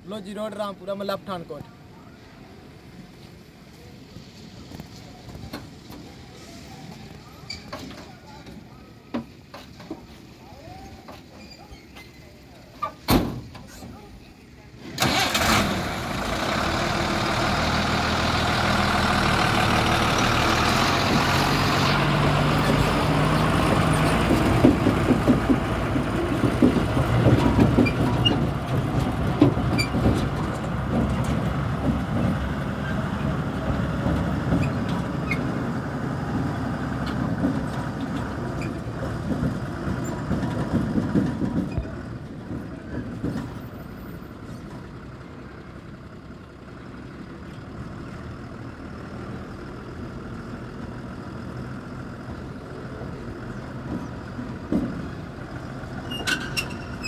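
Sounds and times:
truck diesel engine revving: 14.8s - 43.3s.

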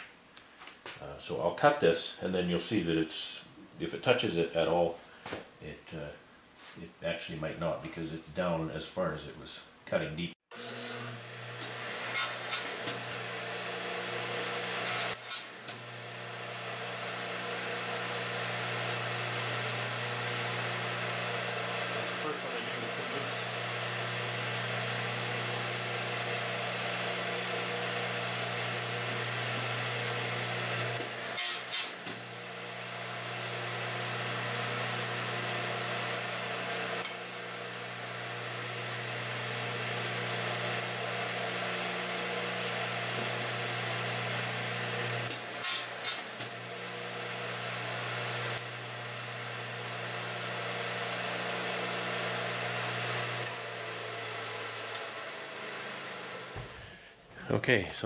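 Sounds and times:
radial arm saw cutting wood: 10.5s - 56.8s.

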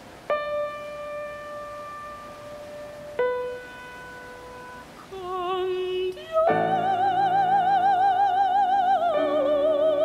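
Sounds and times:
piano note ringing: 0.0s - 5.1s
person singing: 5.0s - 10.0s.

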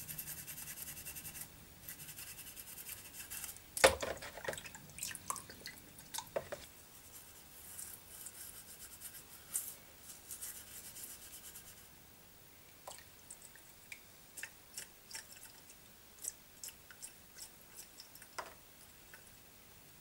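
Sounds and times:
water dripping into bowl: 4.4s - 6.6s, 12.7s - 18.4s
toothbrush scrubbing metal in water: 14.4s - 18.4s.

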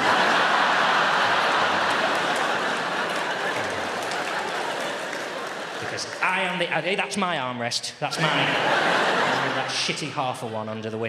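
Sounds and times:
audience applauding: 0.0s - 6.6s.

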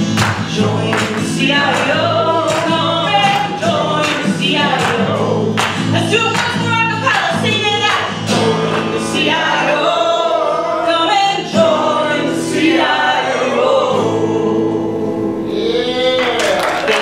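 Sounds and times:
acoustic guitar: 0.0s - 17.0s
woman singing folk song: 0.2s - 13.0s
audience applause and cheering: 15.5s - 17.0s.

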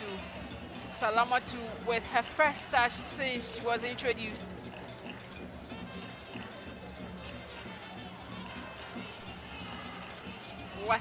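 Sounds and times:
faint music: 0.0s - 11.0s
stadium crowd noise: 0.0s - 11.0s.

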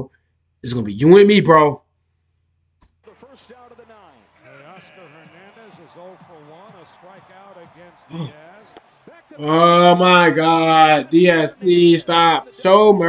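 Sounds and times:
man commentating: 0.6s - 1.8s, 3.1s - 13.0s.

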